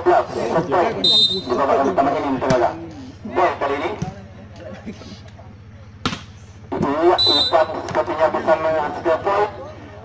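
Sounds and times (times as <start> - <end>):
voices rising: 0.0 - 4.3, 6.6 - 10.0
volleyball hand smack: 6.0 - 6.3.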